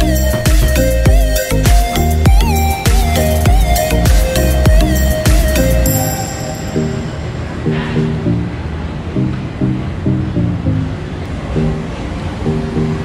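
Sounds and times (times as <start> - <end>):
melody of short repeated notes: 0.0 - 8.7
steady rushing noise: 0.0 - 13.0.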